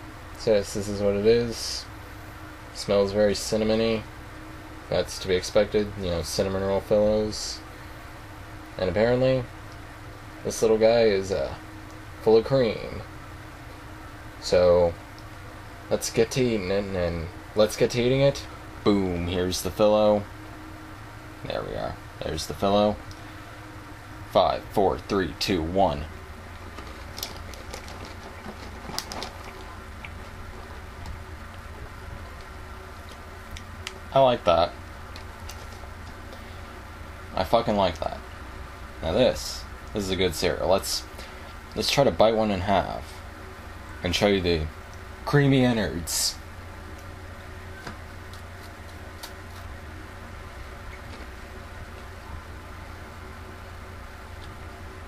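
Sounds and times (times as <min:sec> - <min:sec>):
steady low hum: 0:00.0 - 0:55.0
cereal being chewed: 0:26.6 - 0:30.7.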